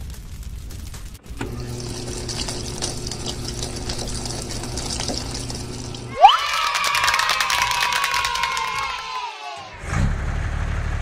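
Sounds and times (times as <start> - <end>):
children cheering: 6.0 - 9.8
clapping: 6.4 - 9.3.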